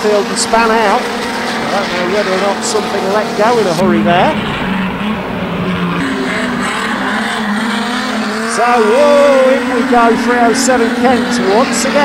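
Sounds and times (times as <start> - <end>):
race car engines: 0.0 - 12.0
track noise: 0.0 - 12.0.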